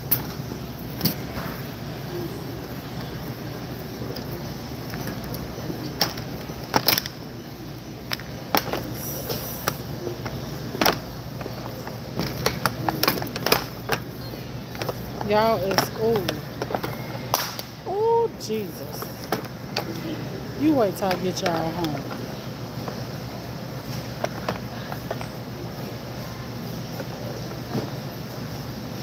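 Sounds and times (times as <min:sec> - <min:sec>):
shopping cart rolling rumble: 0:00.0 - 0:29.0
shopping cart clacks and rattles: 0:08.0 - 0:17.0.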